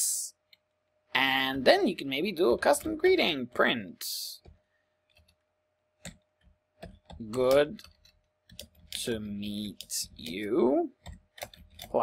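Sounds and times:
faint computer keyboard keystrokes: 6.0 - 9.1, 9.7 - 12.0.

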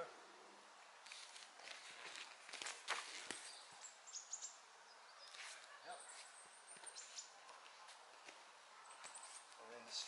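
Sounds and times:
bare feet on foam mats: 1.0 - 3.7, 5.3 - 9.6
rustle of cotton uniforms: 1.0 - 3.9, 5.2 - 10.0.

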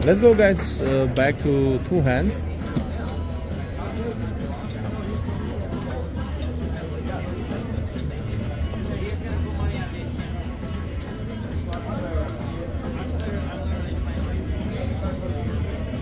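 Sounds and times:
background music: 0.0 - 16.0
murmur of distant voices: 0.0 - 16.0.

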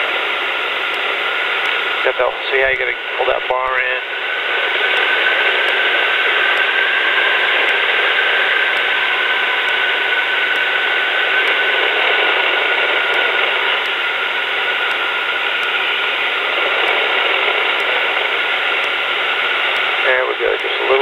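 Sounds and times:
aircraft engine and wind hiss: 0.0 - 21.0.

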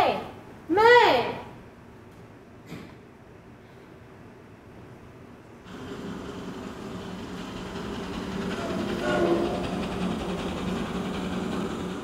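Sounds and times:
train running on rails: 5.6 - 12.0.

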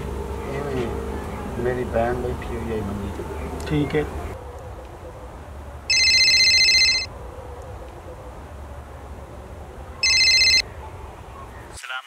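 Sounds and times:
mobile phone ringing: 5.9 - 7.1, 10.0 - 10.6.

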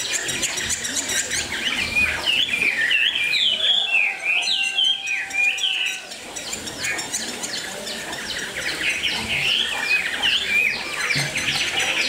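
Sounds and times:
bird singing whistles and warbles: 0.0 - 12.0.

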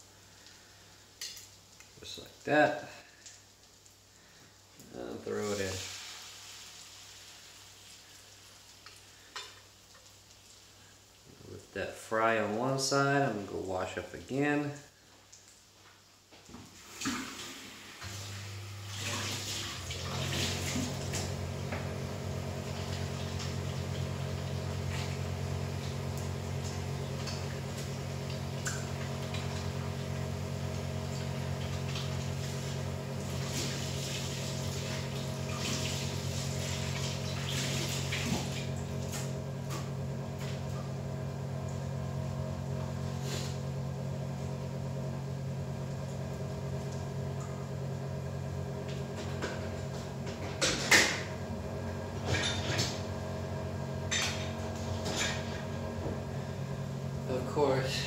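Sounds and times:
tap water running: 0.0 - 58.0.

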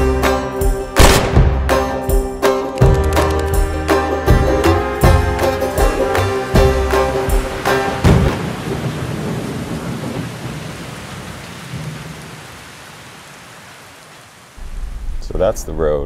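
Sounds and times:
music: 0.0 - 8.3
rain-like hiss: 5.4 - 16.0.

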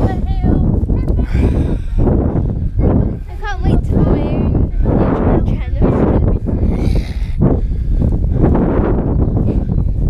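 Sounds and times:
wind rumbling on microphone: 0.0 - 10.0
heavy out-of-breath breathing: 1.1 - 10.0.

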